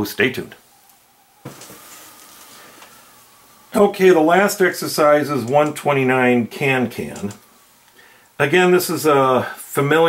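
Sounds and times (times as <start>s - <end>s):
faint steady hiss: 0.0s - 10.0s.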